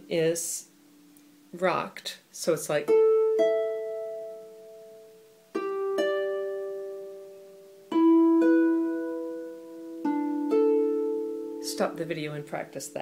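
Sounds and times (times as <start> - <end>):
harp notes plucked: 2.9 - 13.0.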